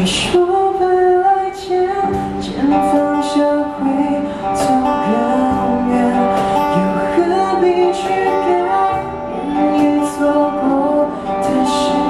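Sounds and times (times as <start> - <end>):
woman singing pop ballad: 0.0 - 12.0.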